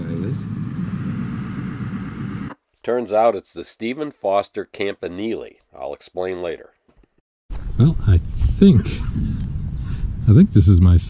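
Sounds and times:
vehicle engine and road noise: 0.0 - 2.6.

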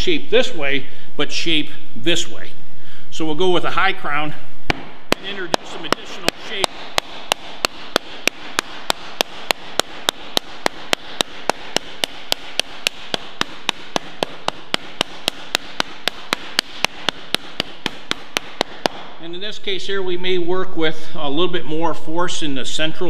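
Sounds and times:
wooden slapper striking sheet metal: 4.7 - 19.3.

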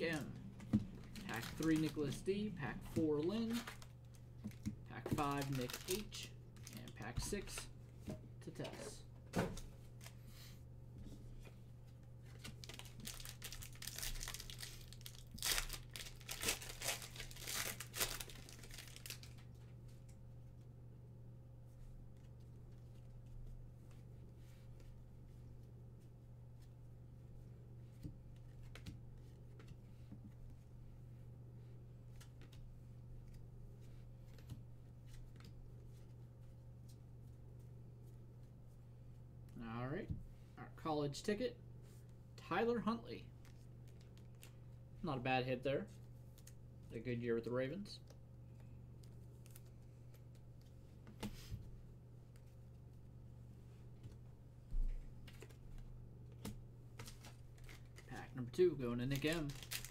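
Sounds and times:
low electrical hum: 0.0 - 59.9.

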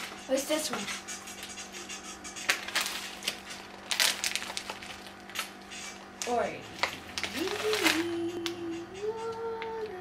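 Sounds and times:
popcorn being chewed: 1.2 - 10.0
plastic snack bag crinkling: 2.5 - 5.6, 6.8 - 8.3.

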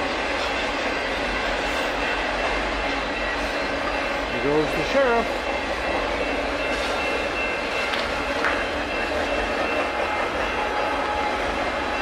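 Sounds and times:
freight train rolling past on rails: 0.0 - 12.0.

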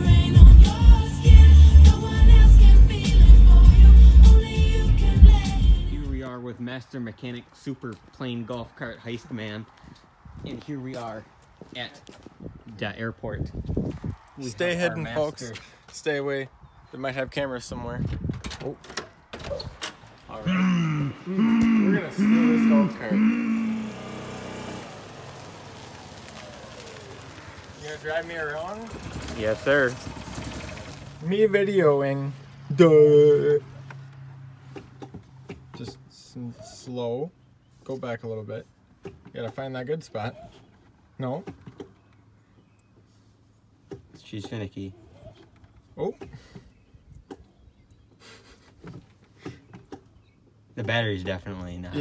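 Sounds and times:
small gas engine running: 21.4 - 28.0, 28.6 - 31.2.

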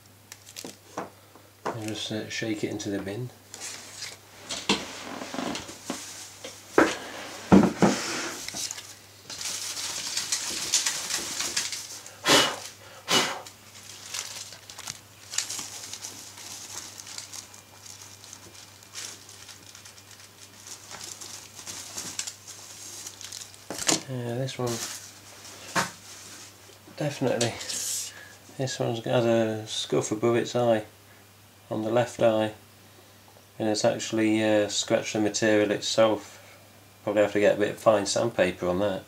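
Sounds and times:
plastic bin liner rustling: 3.6 - 12.1, 13.7 - 27.8
bin knocking on desk: 7.5 - 8.0.

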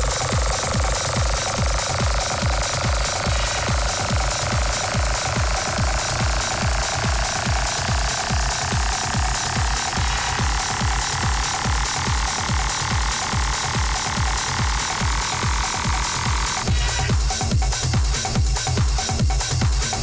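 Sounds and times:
techno kick drum: 0.0 - 20.0.

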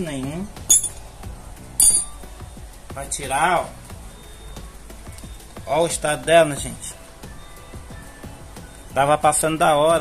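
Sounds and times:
metallic clink: 0.7 - 1.0, 1.8 - 2.3.

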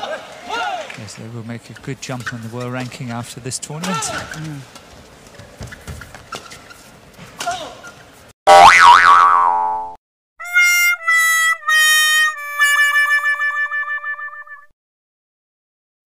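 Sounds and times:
cartoon boing: 8.5 - 10.0.

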